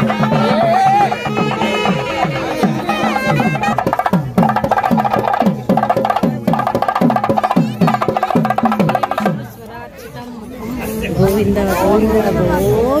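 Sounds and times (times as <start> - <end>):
saxophone melody: 0.0 - 4.2
steady drum beat: 0.0 - 9.7.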